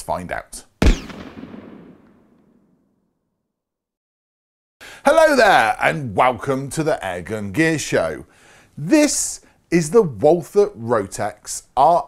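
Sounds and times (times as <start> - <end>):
blast boom with long echo: 0.8 - 2.6.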